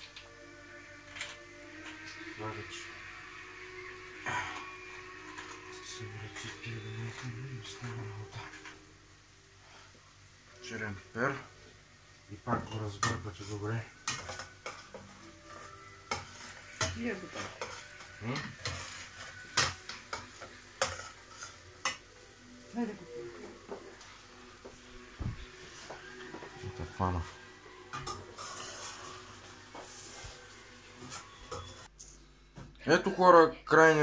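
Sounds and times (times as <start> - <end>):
light sizzle of frying: 0.0 - 34.0
metal spoon scraping a pot: 3.8 - 8.9, 12.7 - 22.0, 27.9 - 31.9.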